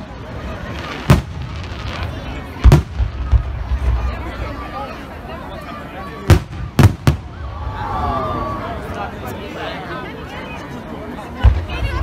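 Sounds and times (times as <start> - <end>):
voices of onlookers: 0.0 - 12.0
fireworks bangs: 0.6 - 4.7, 6.2 - 7.7.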